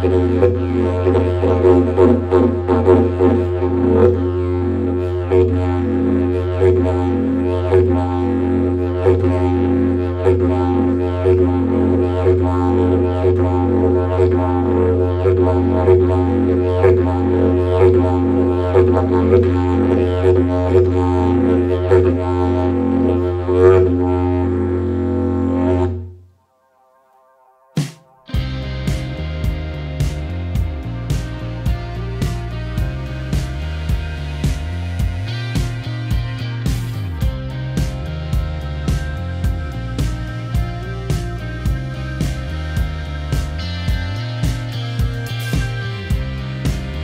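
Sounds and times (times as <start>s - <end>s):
didgeridoo drone: 0.0s - 26.3s, 28.0s - 47.0s.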